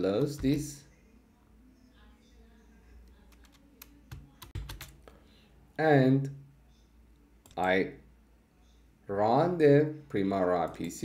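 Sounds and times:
computer keys clicking: 3.0 - 5.0, 7.4 - 7.8.

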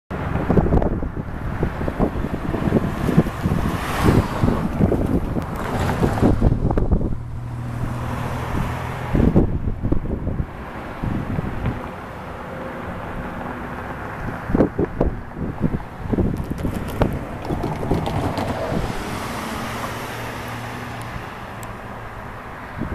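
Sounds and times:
wind buffeting microphone: 0.1 - 11.9, 13.0 - 22.9.

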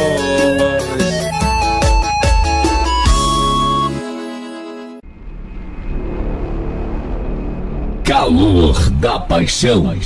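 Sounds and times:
rumbling whoosh: 5.0 - 9.4.

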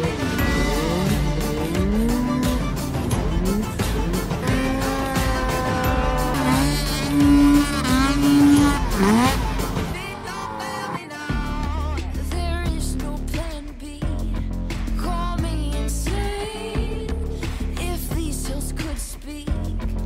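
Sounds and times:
snowmobile engine revving: 0.0 - 11.3
background music: 0.0 - 20.0.

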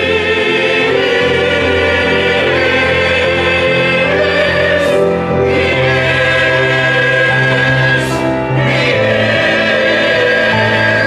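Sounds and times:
choir singing slow chords: 0.0 - 11.0
piano accompaniment: 0.0 - 11.0.

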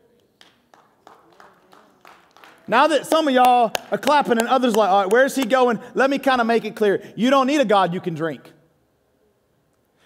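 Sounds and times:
faint scattered hand claps: 0.1 - 5.6.

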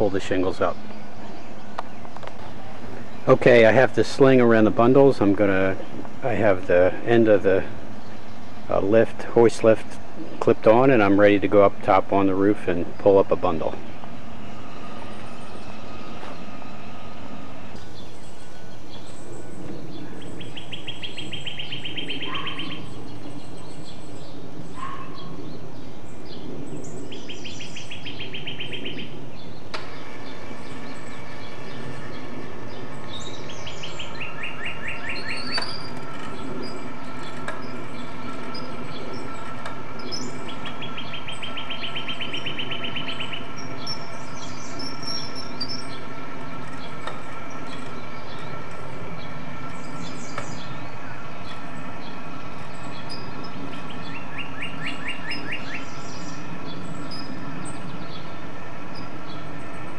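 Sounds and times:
low background rumble: 0.0 - 59.9
songbird trilling: 0.0 - 59.9
bird chirps: 9.6 - 59.9.

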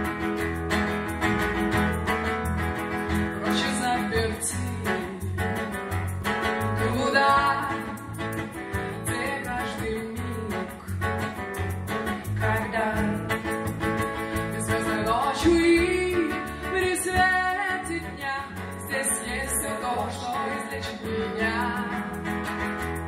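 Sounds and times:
acoustic guitar: 0.0 - 23.0
electric bass guitar: 0.0 - 23.0
women singing: 3.4 - 5.3, 6.8 - 8.2, 8.8 - 10.9, 12.4 - 13.4, 14.5 - 22.2.

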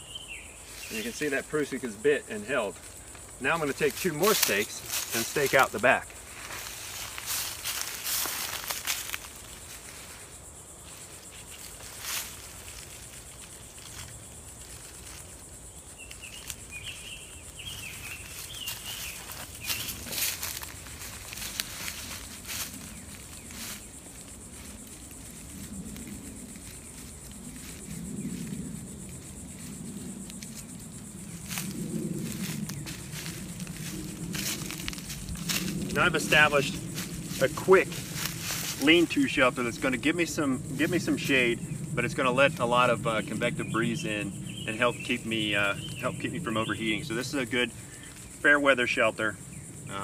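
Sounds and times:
high insect hiss: 0.0 - 50.0
footsteps in dry leaves: 0.3 - 41.5
nylon poncho rustling: 3.0 - 40.0.

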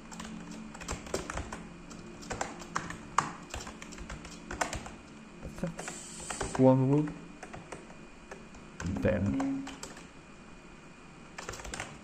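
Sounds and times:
computer keyboard typing: 0.1 - 5.0, 5.8 - 10.1, 11.4 - 12.0.

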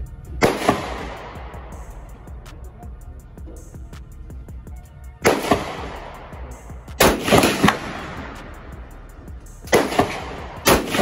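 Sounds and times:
rifle shots with ringing echo: 0.4 - 2.0, 5.2 - 9.0, 9.6 - 11.0.

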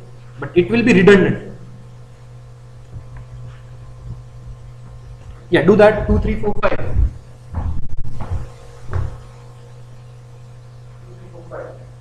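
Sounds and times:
low electrical hum: 0.0 - 12.0
dull knocks: 7.0 - 9.2.

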